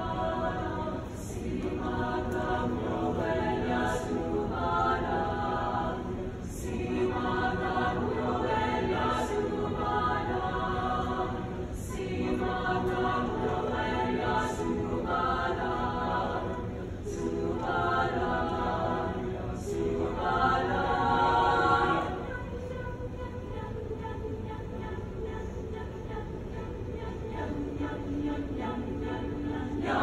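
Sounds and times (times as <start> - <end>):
choir singing in harmony: 0.0 - 30.0.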